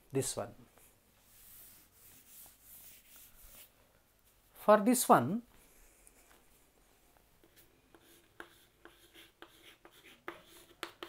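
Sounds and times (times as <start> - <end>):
chalk scratching on chalkboard: 1.2 - 3.7, 7.4 - 11.0.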